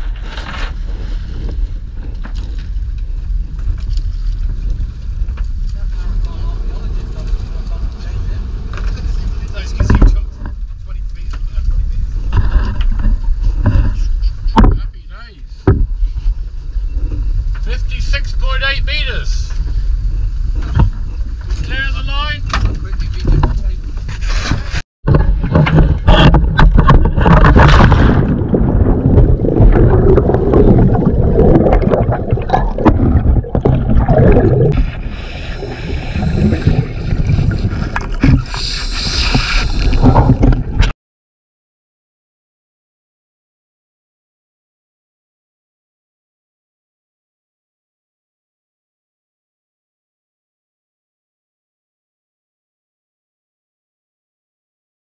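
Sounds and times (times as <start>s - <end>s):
wind: 0.0s - 41.0s
water rushing past hull: 25.3s - 40.9s.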